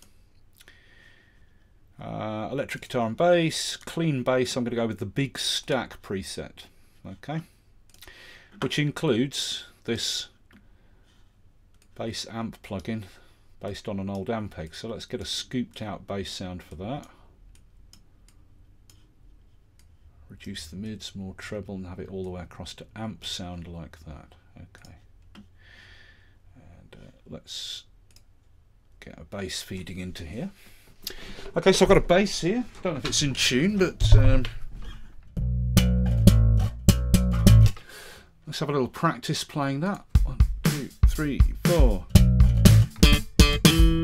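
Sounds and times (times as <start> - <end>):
computer mouse clicking: 17.5 - 19.1
low steady hum: 29.9 - 37.8
electric bass plucked notes: 34.0 - 34.6, 35.3 - 37.8, 40.3 - 44.0.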